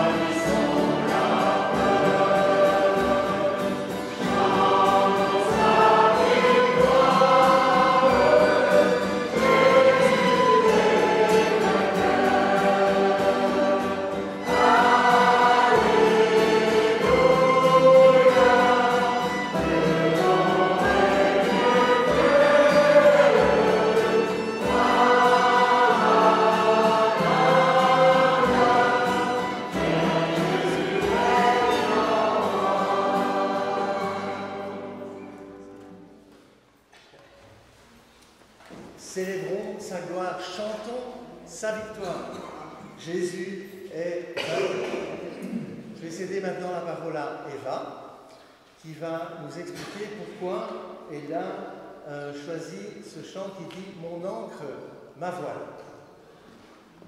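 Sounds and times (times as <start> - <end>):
congregation singing in unison: 0.0 - 36.3, 39.0 - 47.8
musical accompaniment: 0.0 - 36.6.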